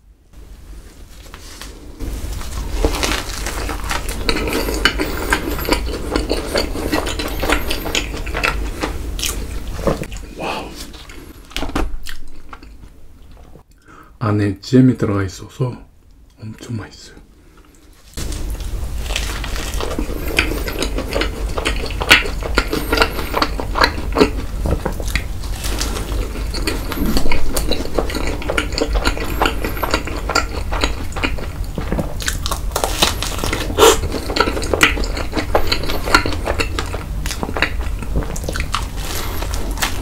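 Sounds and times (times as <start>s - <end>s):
crunchy biting and chewing: 1.7s - 12.9s, 18.1s - 40.0s.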